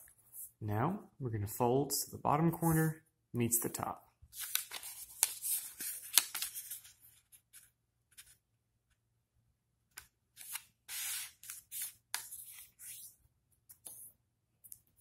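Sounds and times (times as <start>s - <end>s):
paper rustling while folded: 4.3s - 8.4s.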